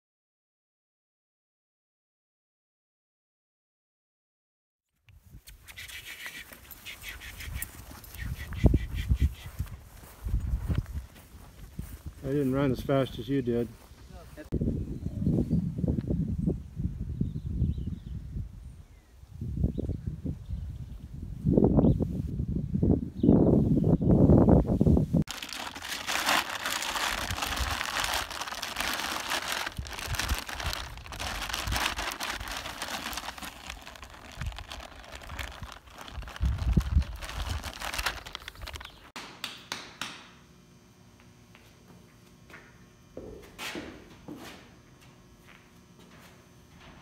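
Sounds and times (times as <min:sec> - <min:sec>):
crinkly bag crackling: 0:25.3 - 0:39.1.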